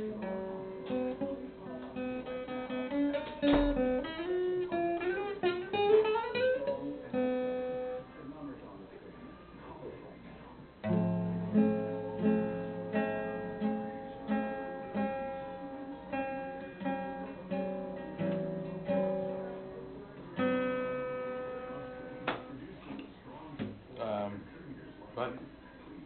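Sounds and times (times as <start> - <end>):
acoustic guitar plucked chords: 0.0 - 8.0, 10.8 - 22.6.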